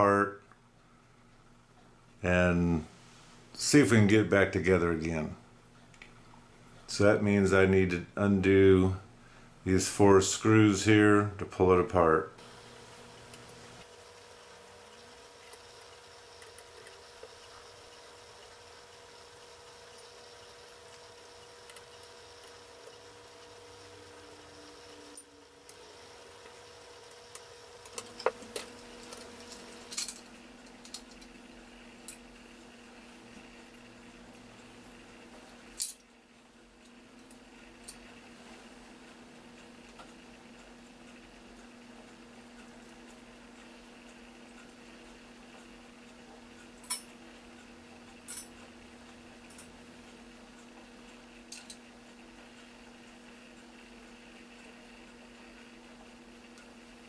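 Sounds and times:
faint steady hum: 0:00.0 - 0:57.0
small brass parts clicking: 0:27.3 - 0:31.3.

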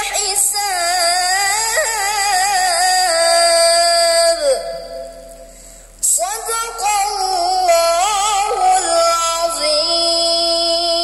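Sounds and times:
boy reciting melodically: 0:00.0 - 0:11.0.

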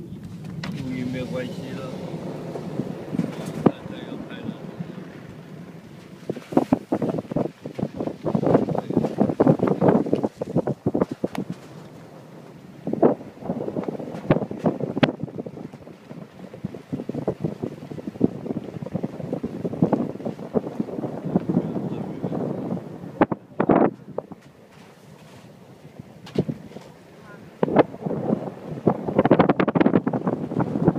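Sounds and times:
wind buffeting microphone: 0:00.0 - 0:30.9.

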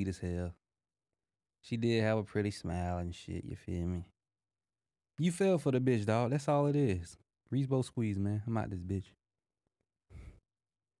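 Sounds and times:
short exhale: 0:10.1 - 0:10.4.

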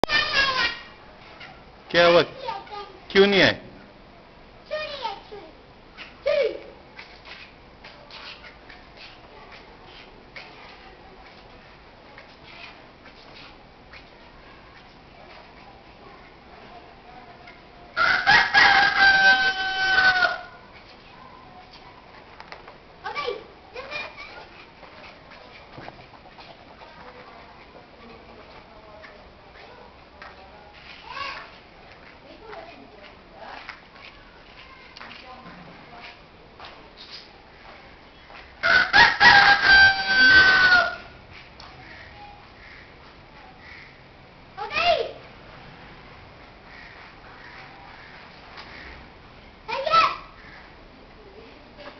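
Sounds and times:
rooster crowing: 0:18.0 - 0:20.6, 0:38.6 - 0:41.2
loud animal call: 0:38.7 - 0:41.1.

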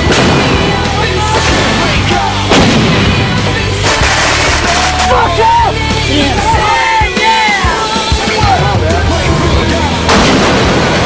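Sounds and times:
background music: 0:00.0 - 0:11.0
howitzer firing blasts: 0:01.4 - 0:05.1, 0:10.1 - 0:11.0.

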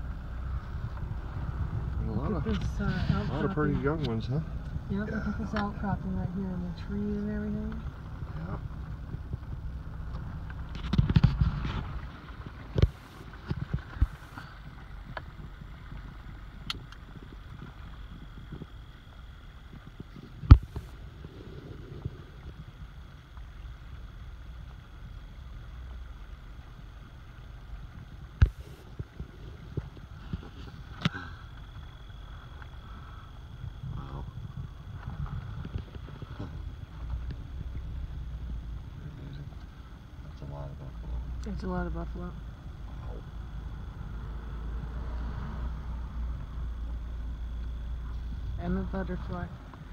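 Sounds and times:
car engine rumble: 0:00.0 - 0:49.9.

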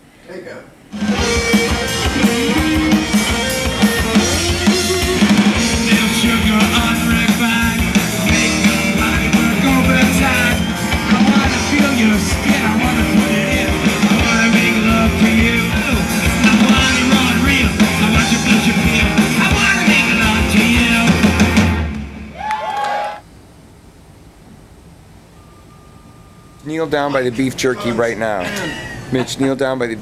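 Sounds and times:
low background noise: 0:00.0 - 0:02.2, 0:21.1 - 0:30.0
live rock band playing: 0:01.0 - 0:22.3
sung vocals: 0:03.7 - 0:21.8.

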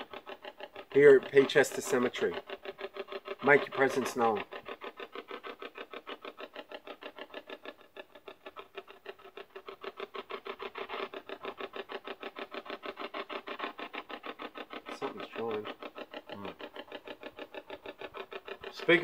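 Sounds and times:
stuttering chopped radio noise: 0:00.0 - 0:19.0.

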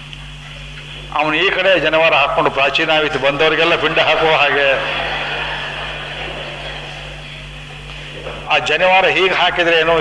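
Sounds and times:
low background hum and hiss: 0:00.0 - 0:10.0.

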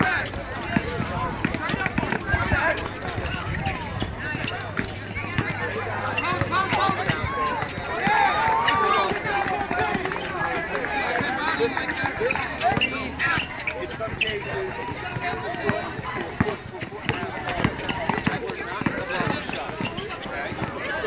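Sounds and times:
crowd talking and calling out: 0:00.0 - 0:21.0
running footsteps: 0:00.0 - 0:21.0
basketball bouncing on asphalt: 0:00.2 - 0:11.4, 0:12.1 - 0:21.0.

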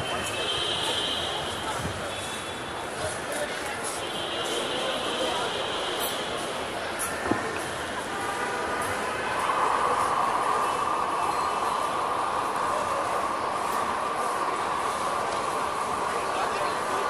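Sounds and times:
crowd rumble with voices: 0:00.0 - 0:17.0.

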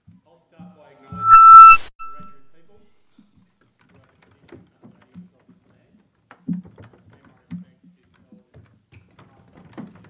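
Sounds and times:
microphone feedback squeal: 0:01.1 - 0:02.5.

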